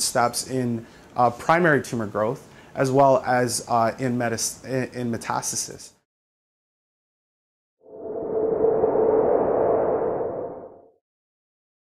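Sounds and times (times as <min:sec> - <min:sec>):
sonar-like whoosh: 0:07.9 - 0:11.0.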